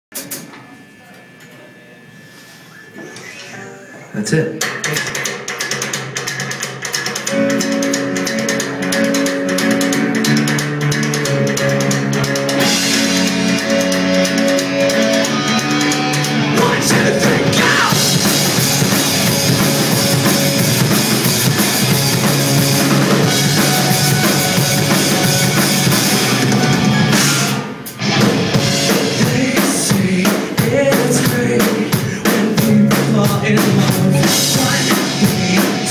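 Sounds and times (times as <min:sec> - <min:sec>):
live rock band: 0:04.5 - 0:35.9.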